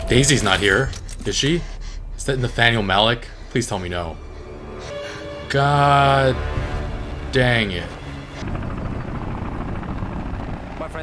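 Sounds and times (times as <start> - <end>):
helicopter rotors beating: 0.0 - 11.0.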